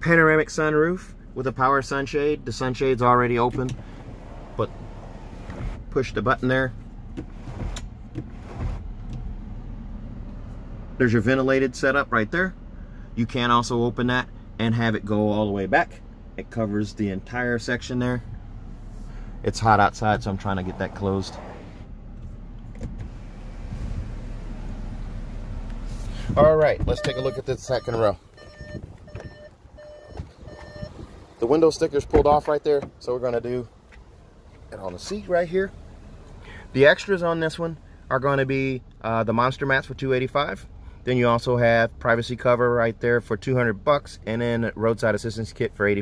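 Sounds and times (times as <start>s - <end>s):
electronic warning beeps: 26.9s - 31.0s.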